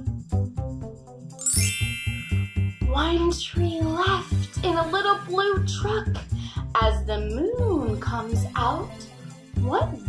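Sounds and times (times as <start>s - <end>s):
children's music with steady beat: 0.1s - 10.0s
shimmering chime glissando: 1.4s - 3.3s
person speaking over music: 2.8s - 6.2s, 6.8s - 10.0s.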